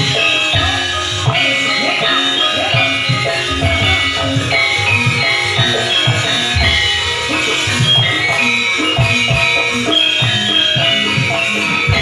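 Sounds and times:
bronze metallophones: 0:00.0 - 0:12.0
low drum strokes: 0:06.4 - 0:07.9.

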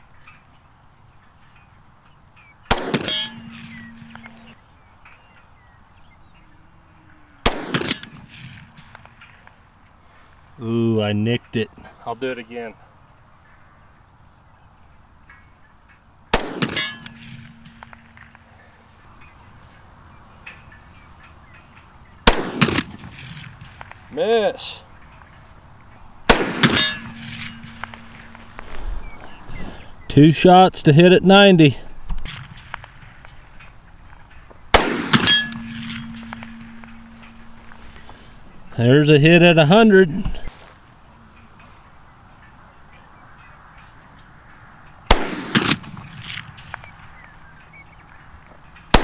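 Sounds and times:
pistol shots: 0:02.7 - 0:04.6, 0:07.4 - 0:09.2, 0:16.3 - 0:18.4, 0:22.2 - 0:24.0, 0:26.3 - 0:28.4, 0:34.7 - 0:37.6, 0:45.1 - 0:46.9
steel target clang: 0:02.7 - 0:04.6, 0:07.5 - 0:09.2, 0:16.4 - 0:18.6, 0:26.3 - 0:28.6, 0:34.7 - 0:38.4.

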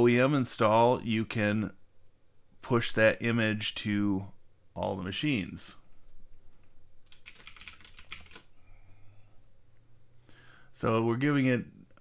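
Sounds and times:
computer keyboard typing: 0:07.0 - 0:08.5.

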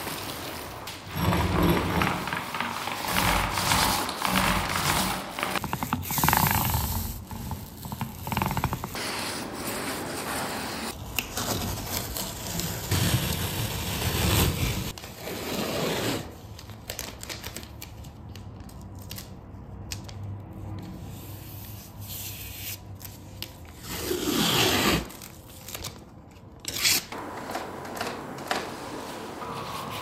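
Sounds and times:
tape peeling and crackling: 0:16.3 - 0:20.4, 0:21.6 - 0:28.1.

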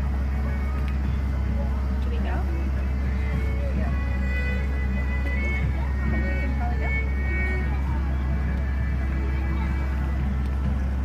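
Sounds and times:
car engine idling: 0:00.0 - 0:11.0
faint voices: 0:00.0 - 0:11.0.

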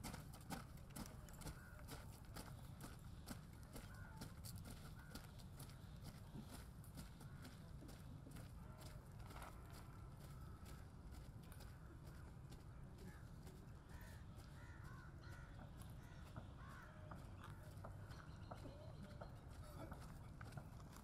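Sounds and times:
distant crow caws: 0:01.4 - 0:02.6, 0:03.7 - 0:08.1, 0:09.8 - 0:20.1.

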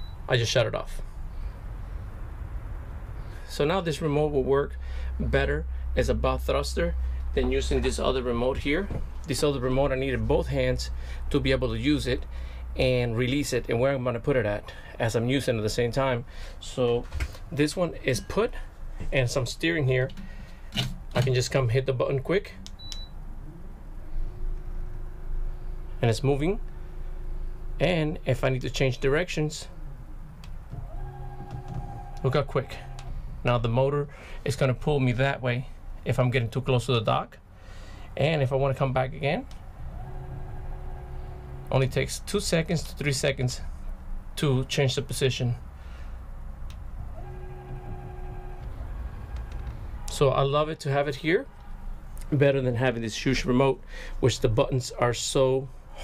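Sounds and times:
electric motor hum: 0:29.8 - 0:33.4, 0:39.4 - 0:42.3, 0:46.7 - 0:50.2.

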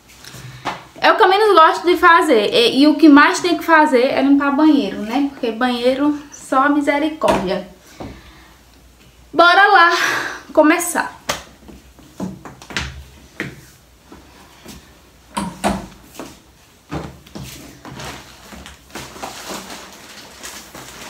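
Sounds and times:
plastic wrapping rustling: 0:15.9 - 0:21.0.

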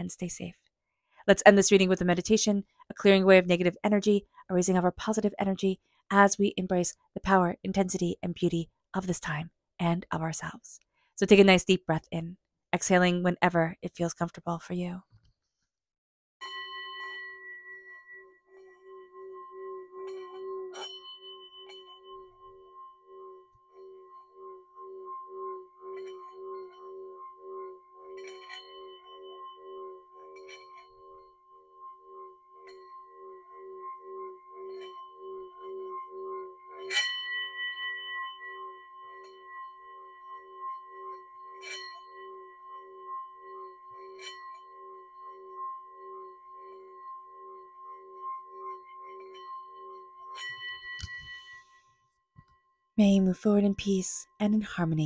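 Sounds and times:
singing bowl humming: 0:16.4 - 0:53.0.

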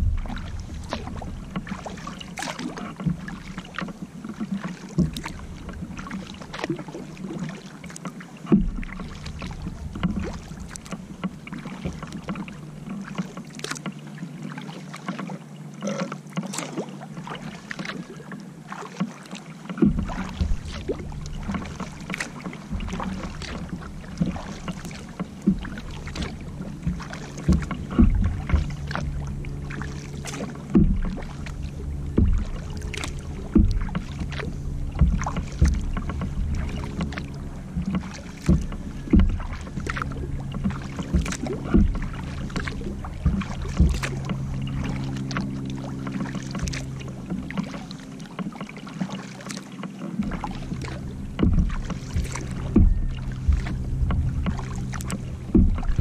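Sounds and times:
low rumble of water and wind: 0:00.0 - 0:56.0
paddle splashing in water: 0:00.0 - 0:56.0.

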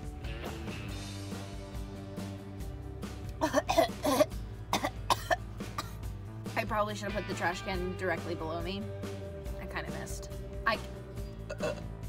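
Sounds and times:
woman coughing and gagging: 0:03.4 - 0:06.0, 0:11.5 - 0:11.9.

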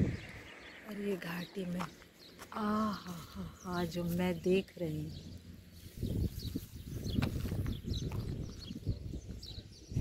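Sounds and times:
wind buffeting microphone: 0:00.0 - 0:02.3, 0:05.1 - 0:10.0
small birds chirping: 0:00.0 - 0:10.0.

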